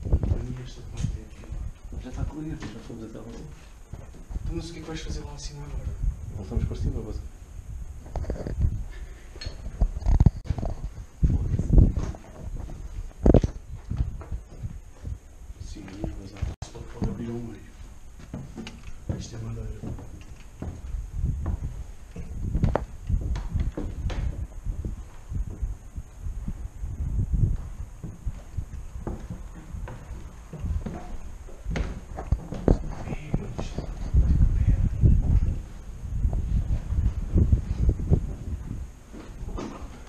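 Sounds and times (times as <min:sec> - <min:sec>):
footsteps and thumps: 0:00.0 - 0:05.3, 0:09.6 - 0:40.0
low voices: 0:32.7 - 0:35.5.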